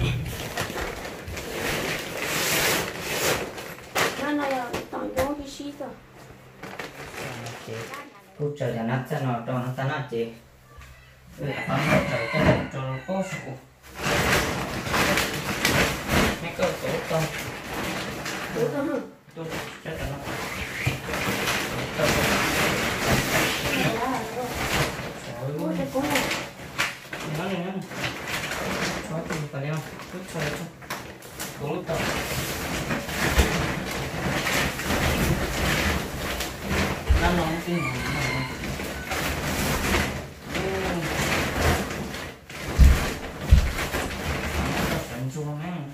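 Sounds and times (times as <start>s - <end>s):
plastic bags rustling and bumping: 0.0s - 8.5s, 13.8s - 45.6s
people talking: 4.2s - 5.9s, 40.6s - 41.1s.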